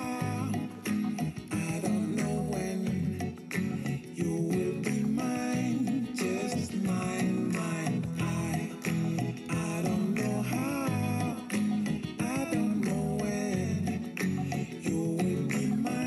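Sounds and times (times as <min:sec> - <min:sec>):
song with singing voice: 0:00.0 - 0:16.0.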